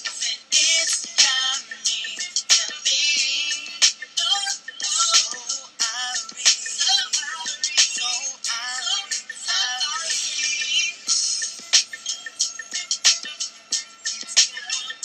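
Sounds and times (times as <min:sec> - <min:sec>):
sung vocal line: 0:00.0 - 0:11.4
hip-hop beat with percussive hits: 0:00.0 - 0:15.0.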